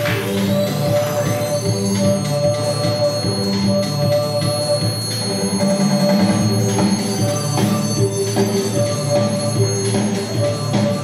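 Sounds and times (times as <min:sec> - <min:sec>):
electronic keyboard music: 0:00.0 - 0:11.0.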